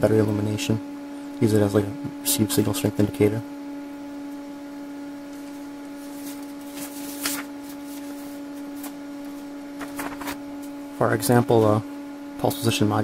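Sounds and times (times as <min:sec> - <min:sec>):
steady electrical hum: 0:00.0 - 0:13.0
paper rustling: 0:05.4 - 0:10.4.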